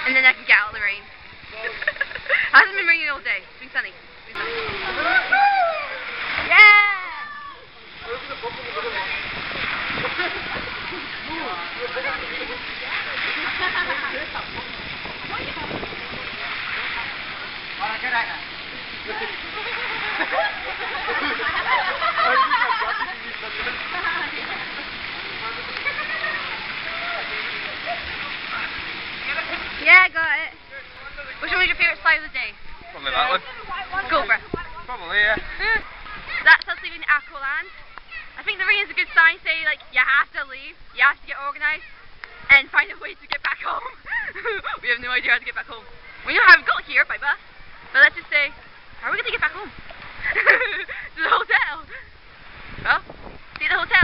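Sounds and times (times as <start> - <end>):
people's voices: 0.0 - 54.0
water rushing down a slide: 1.0 - 54.0.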